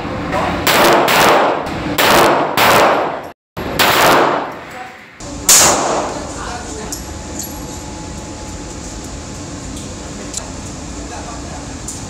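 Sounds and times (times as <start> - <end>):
handgun shots echoing: 0.7 - 4.6, 5.5 - 6.1.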